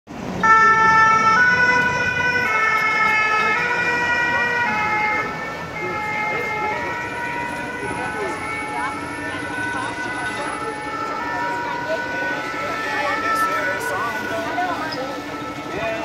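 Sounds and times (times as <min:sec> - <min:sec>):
two-tone emergency siren: 0:00.4 - 0:16.0.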